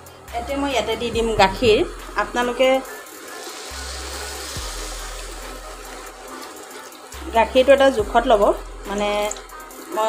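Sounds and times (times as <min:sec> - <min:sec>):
milk pouring and splashing: 0:03.1 - 0:07.2.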